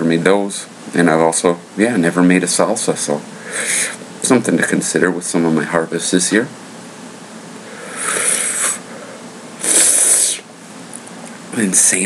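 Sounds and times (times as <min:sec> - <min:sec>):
man breathing in hissing: 0:03.3 - 0:04.0, 0:07.6 - 0:10.5.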